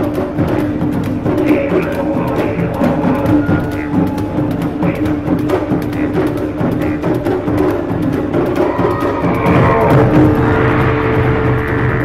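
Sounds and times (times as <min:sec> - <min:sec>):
didgeridoo drone: 0:00.0 - 0:12.0
taiko drumming: 0:00.0 - 0:12.0.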